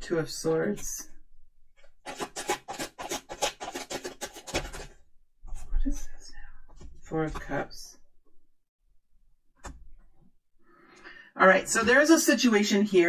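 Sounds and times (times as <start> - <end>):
cards being shuffled: 2.0 - 5.0
cards rustling: 2.0 - 5.0.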